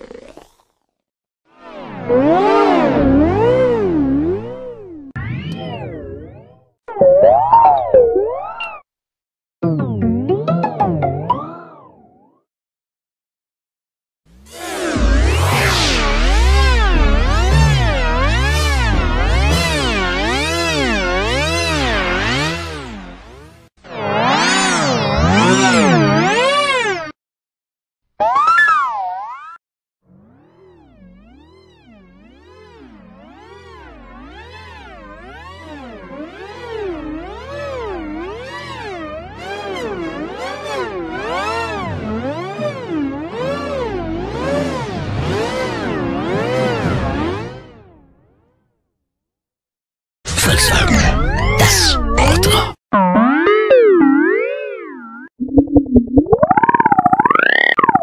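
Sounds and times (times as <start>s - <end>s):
wobbling synthesizer note: 2.0s - 8.8s, 15.0s - 21.3s, 50.8s - 58.0s
rapidly pulsing wobbling tone: 53.0s - 58.0s.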